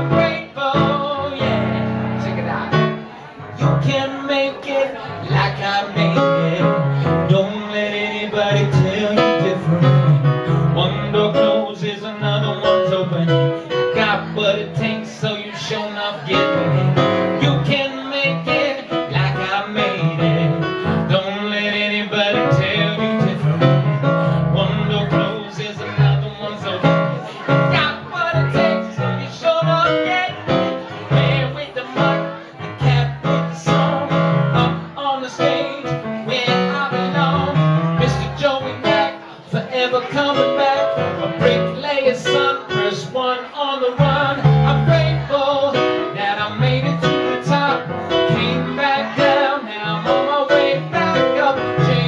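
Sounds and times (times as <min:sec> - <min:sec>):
man singing into a microphone: 0:00.0 - 0:52.0
stage piano accompaniment: 0:00.0 - 0:52.0.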